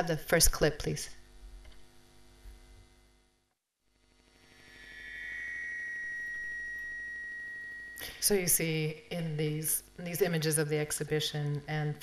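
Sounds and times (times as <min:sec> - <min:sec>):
low hum: 0:03.9 - 0:10.4
steady high tone: 0:04.0 - 0:10.4.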